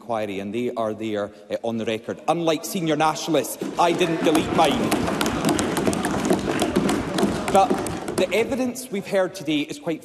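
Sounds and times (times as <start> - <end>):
group applause: 3.6 - 8.7.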